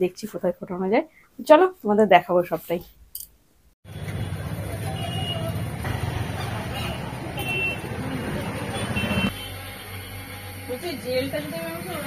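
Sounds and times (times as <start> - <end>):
street traffic noise: 3.8 - 12.0.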